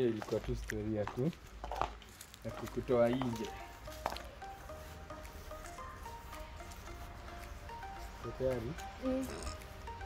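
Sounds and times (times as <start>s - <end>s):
person talking: 8.1s - 9.6s.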